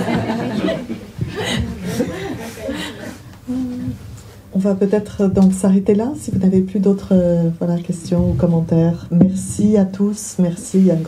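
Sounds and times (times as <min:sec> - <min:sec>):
people laughing: 0:00.0 - 0:03.3
people talking: 0:00.0 - 0:11.0.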